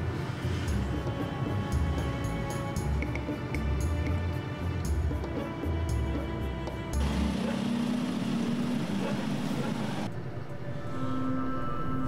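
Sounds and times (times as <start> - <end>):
road noise: 0.0 - 10.9.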